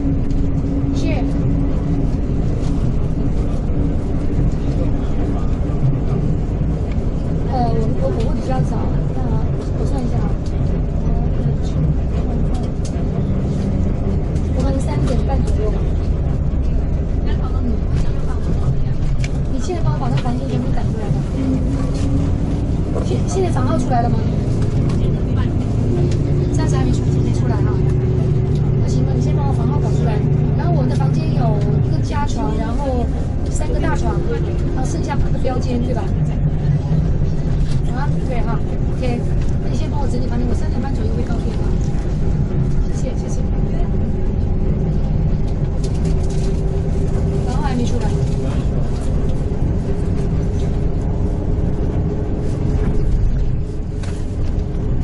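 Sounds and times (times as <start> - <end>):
quiet voices talking: 0.0 - 52.1
vehicle engine and road rumble: 0.0 - 55.0.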